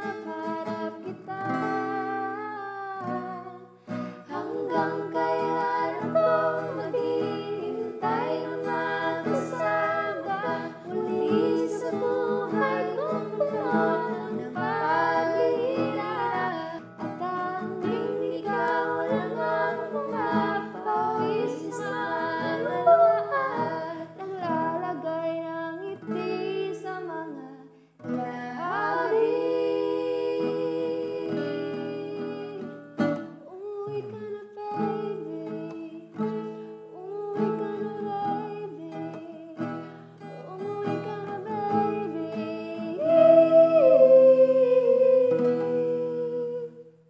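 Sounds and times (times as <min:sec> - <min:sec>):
acoustic guitar: 0:00.0 - 0:47.0
person singing a ballad: 0:00.0 - 0:47.0
person humming: 0:42.9 - 0:46.8.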